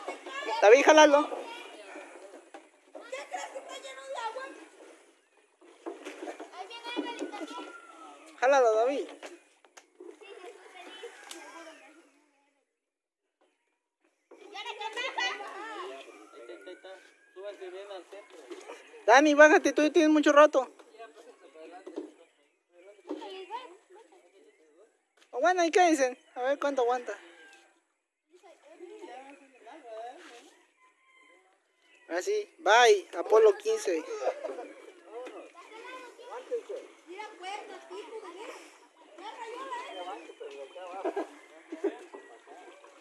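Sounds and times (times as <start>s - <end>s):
chatter of children and adults: 0.0s - 43.0s
faint voices talking: 14.3s - 43.0s.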